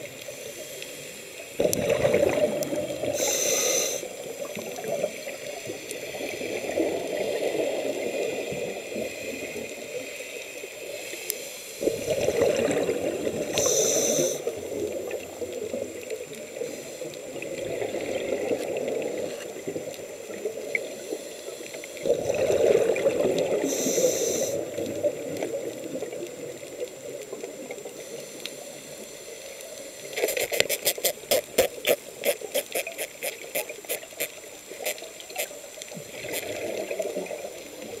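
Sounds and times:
exhaled bubbles underwater: 1.5s - 3.4s, 4.0s - 10.1s, 11.8s - 28.0s, 35.1s - 38.0s
regulator airflow hiss: 3.0s - 4.4s, 13.5s - 14.6s, 23.6s - 24.8s.

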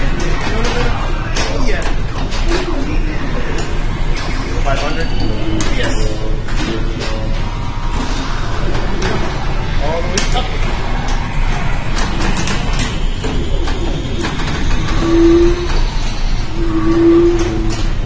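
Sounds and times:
voices: 0.0s - 18.0s
electronic machine sound effects: 2.4s - 18.0s.

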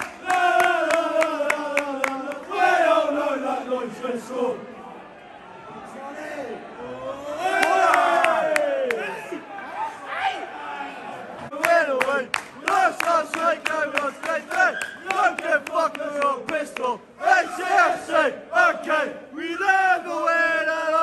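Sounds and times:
rhythmic hand claps: 0.0s - 2.6s, 11.5s - 17.0s
crowd singing: 0.0s - 5.4s, 11.1s - 21.0s
crowd chanting: 0.0s - 21.0s.

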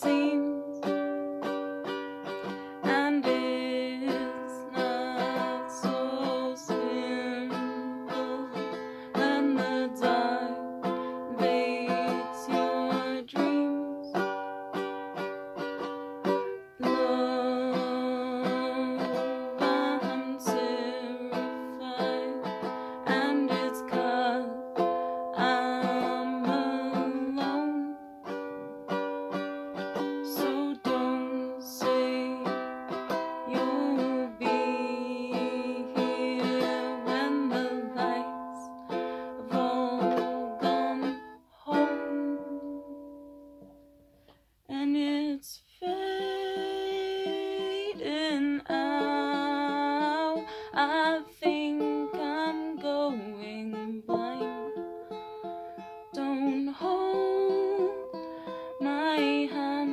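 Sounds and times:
person singing: 0.0s - 28.6s, 29.4s - 43.4s, 44.7s - 54.9s, 56.1s - 59.9s
ukulele strumming chords: 0.0s - 59.9s.

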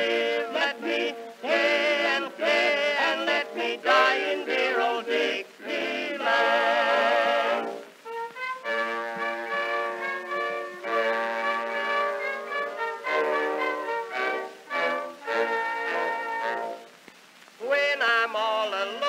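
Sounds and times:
orchestra with prominent brass: 0.0s - 17.0s.

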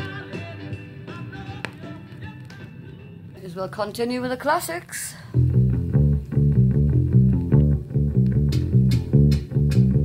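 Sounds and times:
soul record on turntable: 0.0s - 10.0s.

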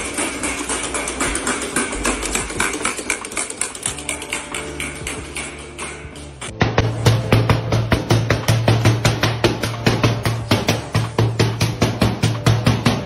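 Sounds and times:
music with fast percussive beat: 3.7s - 13.0s.

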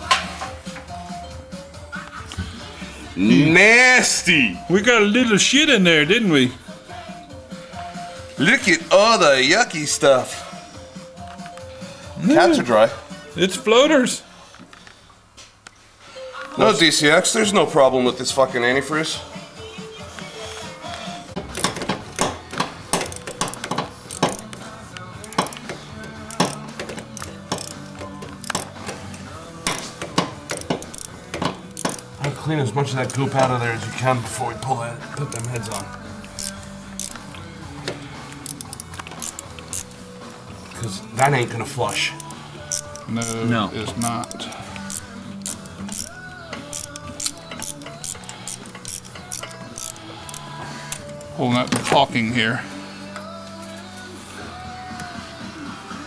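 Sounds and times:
background music: 0.0s - 56.0s
metal hand tools clicking: 21.4s - 29.0s, 29.7s - 32.4s, 33.0s - 33.6s, 35.2s - 37.5s, 38.3s - 40.0s, 41.8s - 51.3s.

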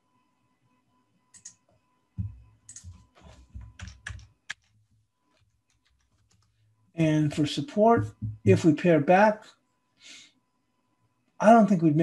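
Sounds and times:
keyboard typing: 1.3s - 6.6s.

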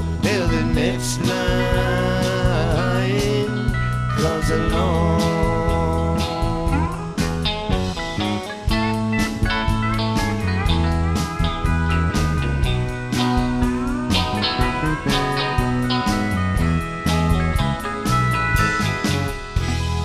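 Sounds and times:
bass: 0.0s - 20.0s
electric guitars sliding notes: 0.0s - 20.0s
keyboard: 0.0s - 20.0s
steady drum beat: 0.0s - 20.0s.

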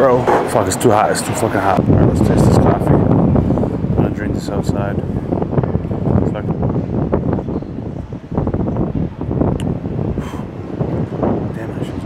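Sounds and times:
city street traffic: 0.0s - 4.0s
wind buffeting microphone: 0.0s - 12.0s.

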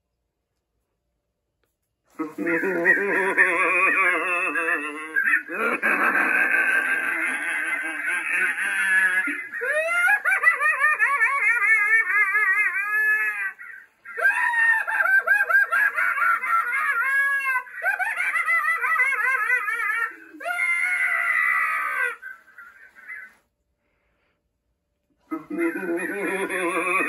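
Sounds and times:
cackling laughter: 2.2s - 23.6s, 25.3s - 27.0s
eerie wavering screams: 12.0s - 23.4s.

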